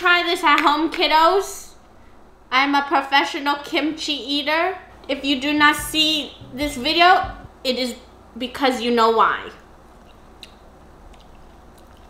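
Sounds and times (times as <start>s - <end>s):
chewing clicks: 10.0s - 12.0s.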